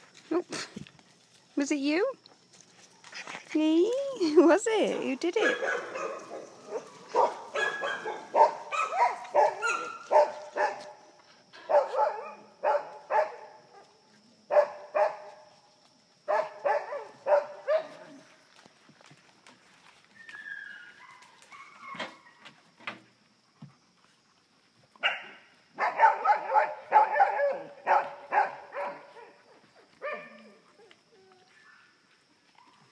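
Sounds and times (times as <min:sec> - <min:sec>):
dogs barking: 0:05.4 - 0:10.9, 0:11.7 - 0:13.9, 0:14.5 - 0:15.3, 0:16.3 - 0:18.1, 0:25.0 - 0:29.4, 0:30.0 - 0:30.6.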